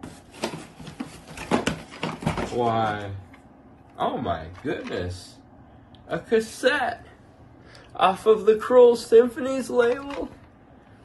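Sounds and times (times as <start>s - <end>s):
items rustling in cardboard box: 0.0s - 3.1s.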